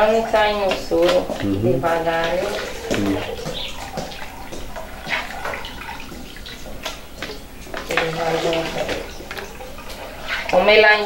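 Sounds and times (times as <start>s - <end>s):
liquid sloshing and splashing in a pot: 0.0s - 11.0s.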